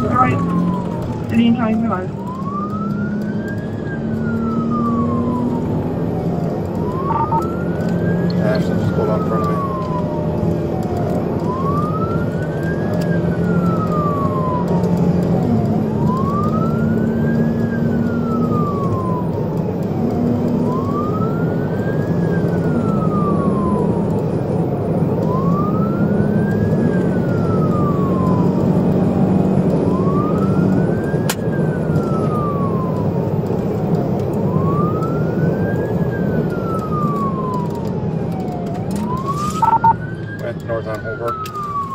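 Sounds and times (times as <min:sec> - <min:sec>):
car engine and road noise: 0:00.0 - 0:41.9
police siren wailing: 0:00.0 - 0:41.9.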